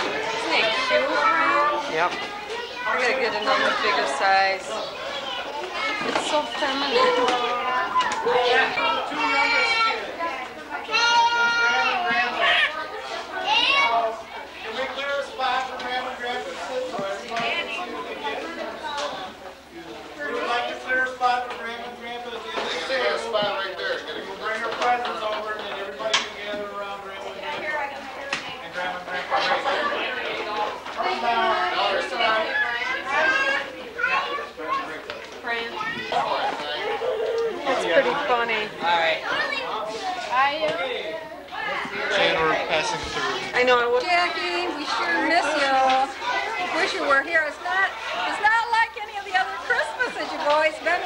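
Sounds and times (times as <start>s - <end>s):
children's voices: 0.0s - 15.8s, 16.8s - 20.6s, 27.3s - 51.0s
people talking over each other: 0.0s - 51.0s.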